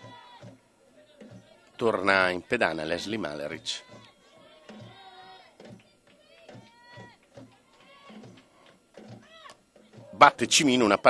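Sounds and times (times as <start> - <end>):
distant voices chanting: 0.0 - 10.4.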